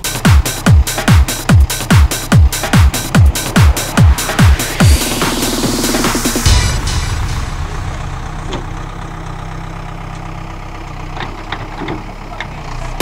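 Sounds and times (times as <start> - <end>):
electronic dance music: 0.0 - 8.2
diesel engine running: 0.0 - 13.0.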